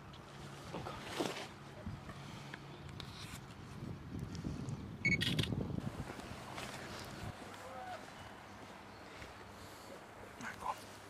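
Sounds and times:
camera high beep: 0:05.0 - 0:05.5
camera shutter click: 0:05.1 - 0:05.6.

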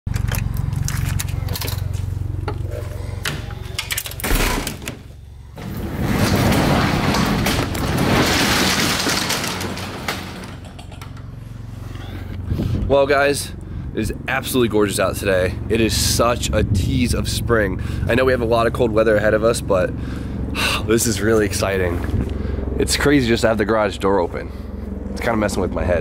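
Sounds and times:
garage door rattling open: 0:02.8 - 0:11.4
keys and lock rattling: 0:03.4 - 0:04.9.

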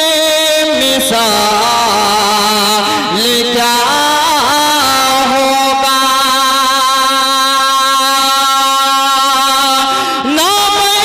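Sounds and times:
man singing long note: 0:00.0 - 0:11.0.

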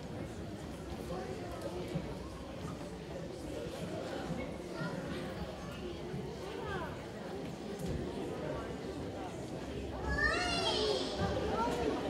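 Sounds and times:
murmur of children's voices: 0:00.0 - 0:12.0
child's high voice: 0:10.0 - 0:11.8.

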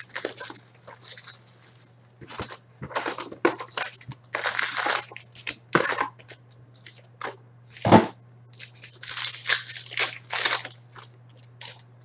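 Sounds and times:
card packs crinkling: 0:00.0 - 0:07.9, 0:08.6 - 0:12.0.

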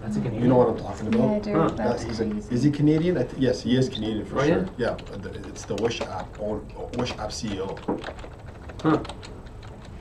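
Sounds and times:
keyboard key clicks: 0:04.6 - 0:10.0.

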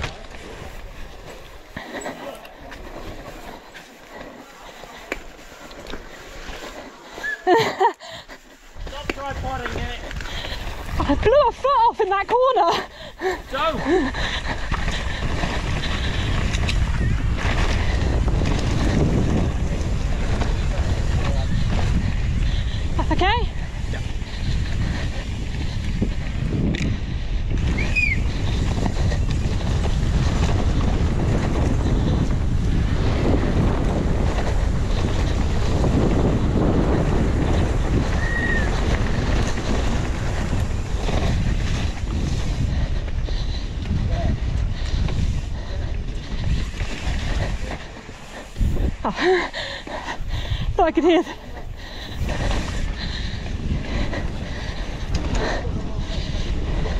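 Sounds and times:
wind rushing over microphone: 0:00.0 - 0:01.9, 0:02.5 - 0:56.9
bike tyres on rough ground: 0:00.0 - 0:56.9.

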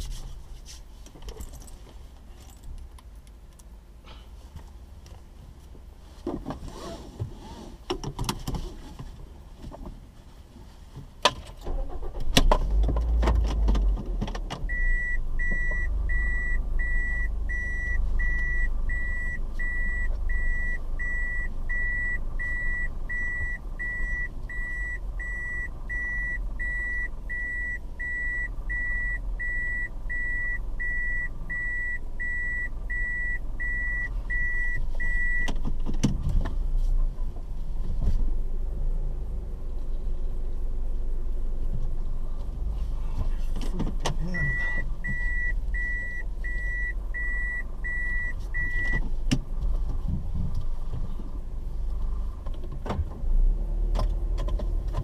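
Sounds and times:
car engine starting and idling: 0:00.0 - 0:55.0
reversing warning beeps: 0:14.7 - 0:35.5, 0:44.3 - 0:49.0.

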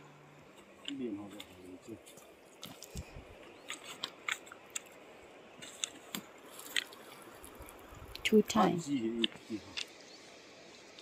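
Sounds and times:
river washing: 0:01.5 - 0:11.0.

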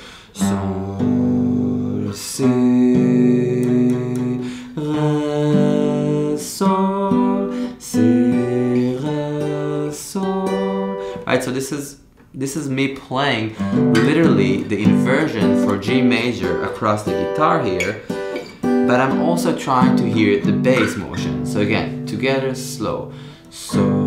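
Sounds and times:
acoustic guitar chords ringing: 0:00.4 - 0:12.0, 0:13.4 - 0:24.0.

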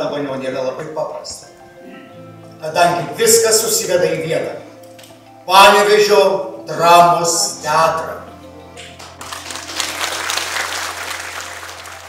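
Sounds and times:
soft background music: 0:00.0 - 0:12.0
audience applauding: 0:08.8 - 0:12.0.

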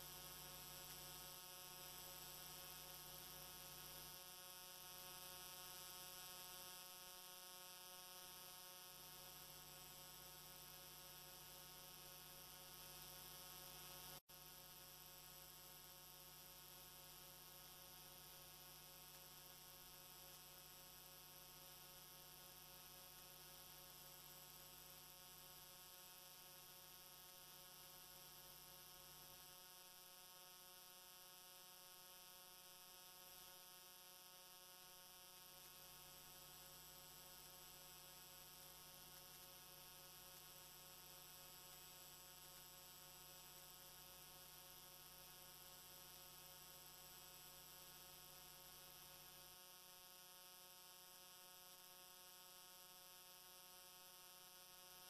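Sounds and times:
faint electrical hum: 0:00.0 - 0:55.0.

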